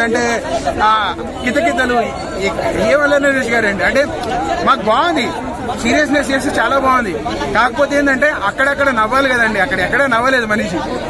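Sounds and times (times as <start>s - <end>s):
man talking: 0.0s - 11.0s
people chattering: 0.0s - 11.0s.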